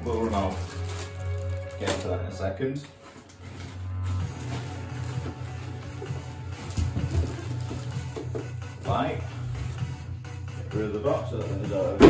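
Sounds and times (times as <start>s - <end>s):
plastic wrapping crinkling: 0.0s - 2.2s, 2.8s - 8.5s
background music with bass: 0.0s - 12.0s.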